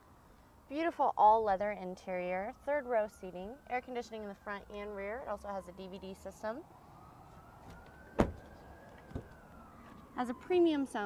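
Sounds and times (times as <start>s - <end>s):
faint siren: 0.0s - 11.0s
car door latch clicking: 8.2s - 8.5s.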